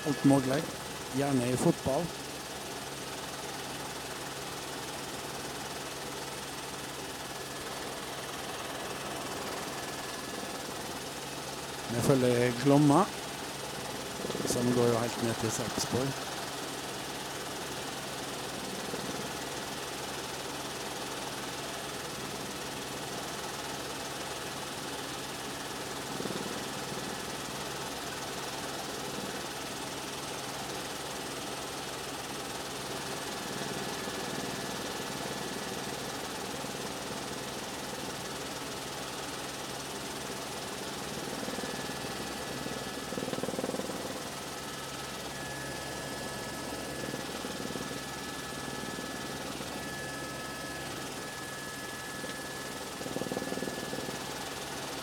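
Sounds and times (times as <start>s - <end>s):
aircraft engine drone: 0.0s - 55.0s.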